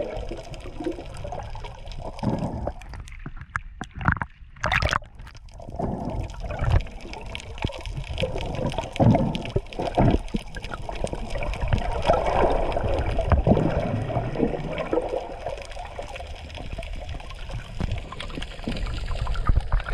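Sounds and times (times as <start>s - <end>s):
underwater knocks and clicks: 0.0s - 19.9s
underwater sloshing and gurgling: 0.0s - 19.9s.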